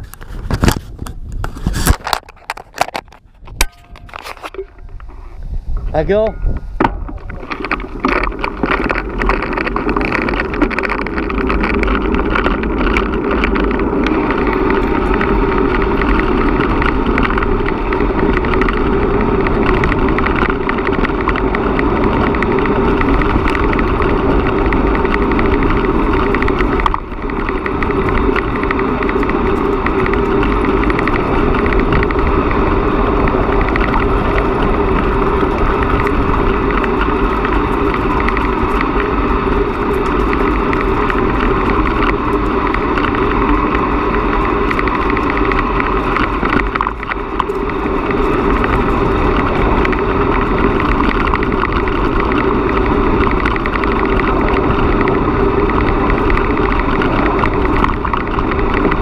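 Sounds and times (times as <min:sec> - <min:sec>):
bicycle tyres on gravel: 0:00.0 - 0:59.0
wind rushing over microphone: 0:00.0 - 0:59.0.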